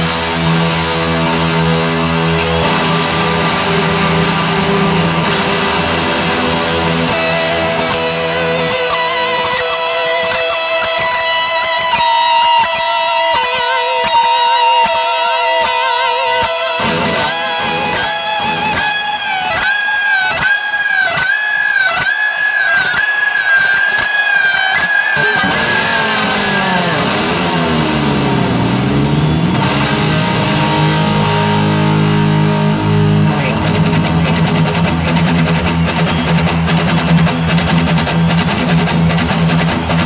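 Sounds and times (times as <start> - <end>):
rock music with electric guitar: 0.0 - 40.0
electric guitar note with vibrato: 25.2 - 35.0.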